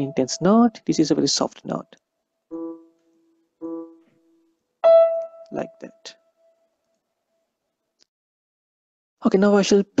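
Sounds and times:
soft piano note: 0:03.6 - 0:06.2.

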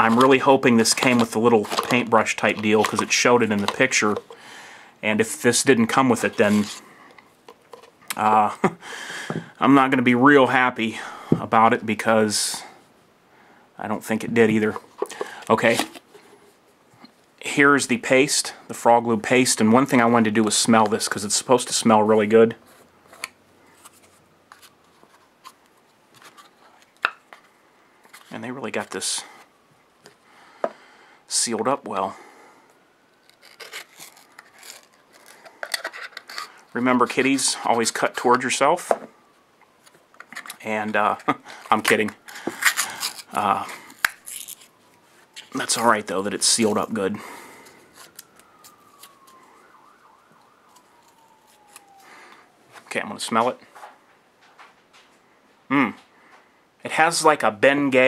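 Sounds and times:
plastic jar lid clicks and scrapes: 0:00.0 - 0:04.4, 0:34.4 - 0:36.5
foil seal being peeled: 0:33.1 - 0:36.7, 0:42.3 - 0:44.7.

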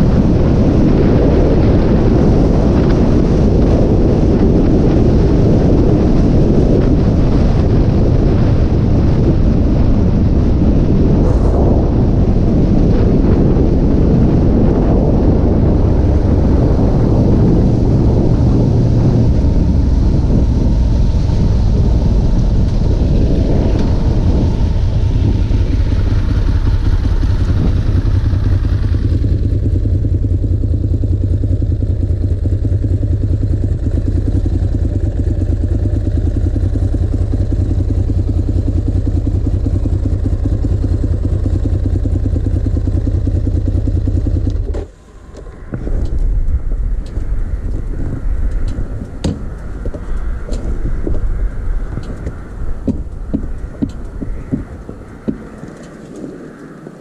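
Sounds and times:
motorcycle engine: 0:00.0 - 0:57.0
wind noise: 0:00.0 - 0:57.0.

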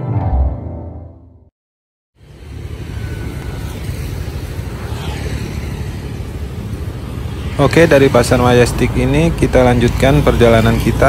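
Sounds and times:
motorcycle and car engines running: 0:02.2 - 0:11.0
traffic rumble: 0:02.2 - 0:11.0.

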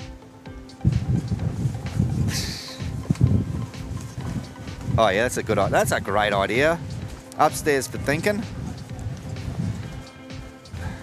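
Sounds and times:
gusty wind buffeting microphone: 0:00.7 - 0:11.0.

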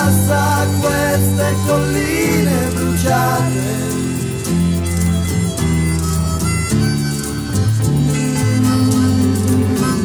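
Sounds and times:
rock guitar chords: 0:00.0 - 0:10.0
sustained bass line: 0:00.0 - 0:10.0.

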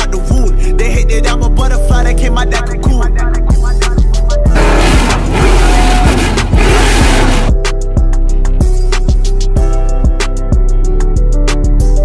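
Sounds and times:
hip-hop music with steady beat: 0:00.0 - 0:12.0
loud car engine running: 0:04.5 - 0:07.6.

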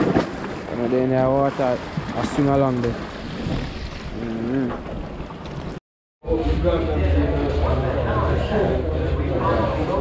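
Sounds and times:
voice: 0:00.7 - 0:03.0, 0:04.2 - 0:04.8, 0:06.2 - 0:10.0.

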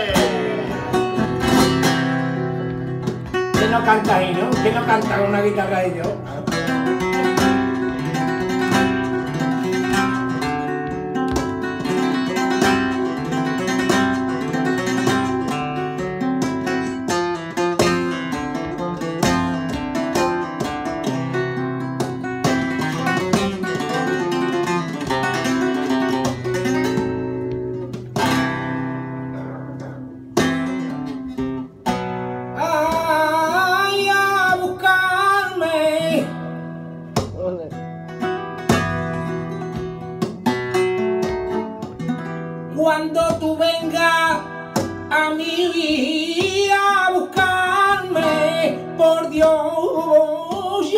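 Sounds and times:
person singing: 0:00.0 - 0:01.5, 0:32.6 - 0:36.4, 0:42.7 - 0:50.9
flamenco guitar playing: 0:00.0 - 0:50.9.

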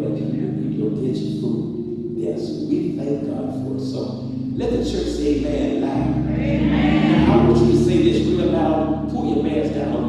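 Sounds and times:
musical accompaniment: 0:00.0 - 0:10.0
group gospel singing: 0:06.4 - 0:08.6.

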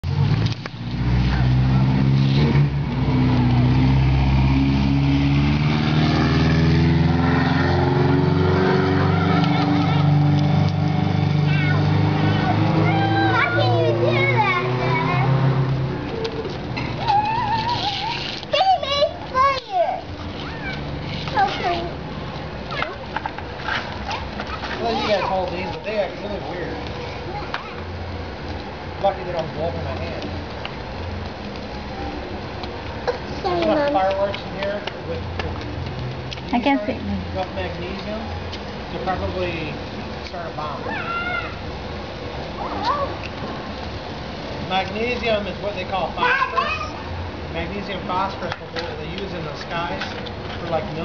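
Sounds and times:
car engine droning: 0:00.0 - 0:17.4
voices: 0:11.2 - 0:28.3, 0:31.5 - 0:43.8, 0:44.6 - 0:51.0
high-pitched voices squealing: 0:17.0 - 0:19.2, 0:20.4 - 0:21.9, 0:40.8 - 0:41.6.

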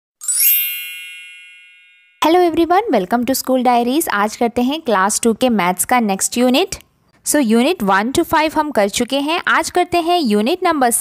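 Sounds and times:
bell-like chime ding: 0:00.2 - 0:02.4.

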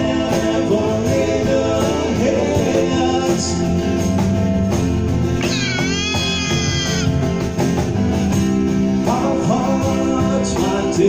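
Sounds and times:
second guitar: 0:00.0 - 0:11.0
strummed acoustic guitar: 0:00.0 - 0:11.0.

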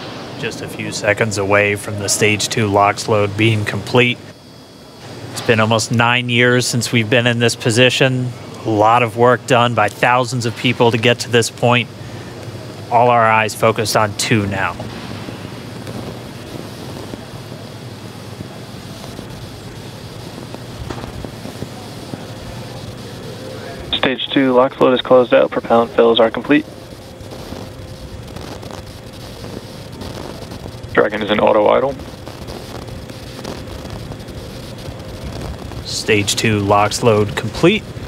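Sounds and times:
faint steady hum: 0:00.0 - 0:38.0.

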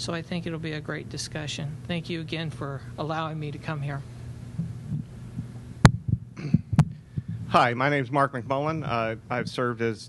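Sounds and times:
steady low hum: 0:00.0 - 0:10.0
microphone bumps: 0:04.4 - 0:07.6
microphone handling knocks: 0:04.5 - 0:07.5.

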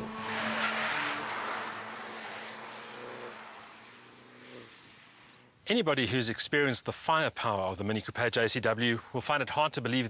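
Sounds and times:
car driving past at speed: 0:00.0 - 0:05.5.

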